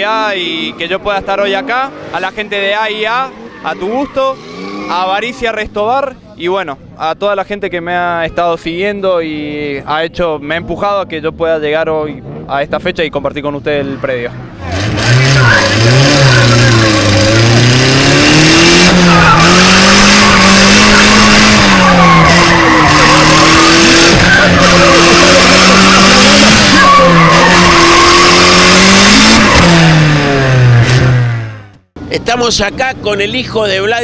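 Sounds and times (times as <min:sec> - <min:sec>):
race car engine at high revs: 0:14.4 - 0:31.9
tyres squealing: 0:14.7 - 0:30.0.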